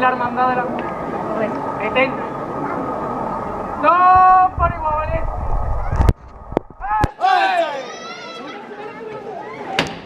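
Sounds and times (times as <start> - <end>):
men shouting: 6.8 - 8.3.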